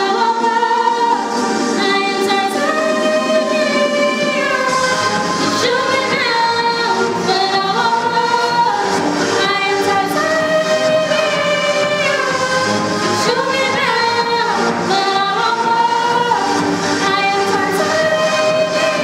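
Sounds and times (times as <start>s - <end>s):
two women singing: 0.0s - 19.0s.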